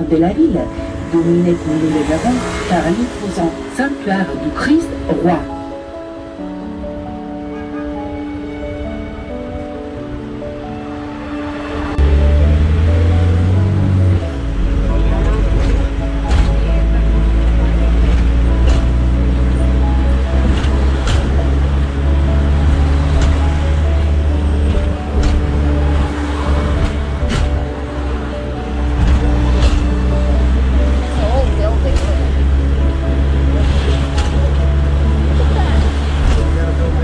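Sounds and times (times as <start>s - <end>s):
background music: 0.0s - 37.0s
bus engine drone: 0.0s - 37.0s.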